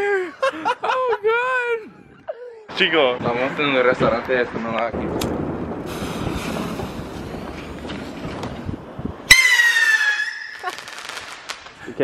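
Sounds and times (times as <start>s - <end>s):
firework fuse hissing: 5.8s - 8.4s
firework rocket whistling: 5.8s - 8.5s, 9.3s - 11.8s.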